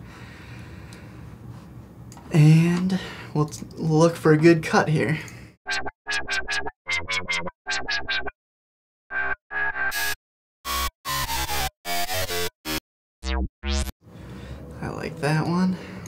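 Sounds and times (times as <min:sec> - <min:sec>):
chopped synth bass: 0:09.2 - 0:13.9.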